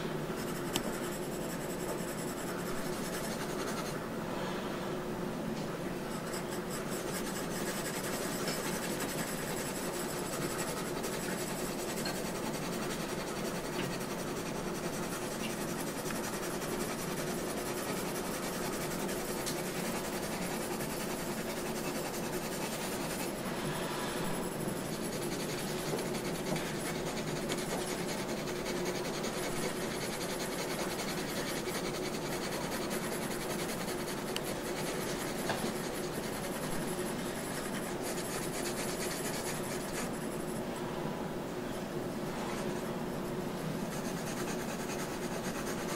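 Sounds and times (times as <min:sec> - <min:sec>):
faint steady hum: 0:00.0 - 0:45.9
pencil scratching on paper: 0:00.4 - 0:04.0, 0:06.1 - 0:23.4, 0:24.4 - 0:40.6, 0:43.8 - 0:45.9.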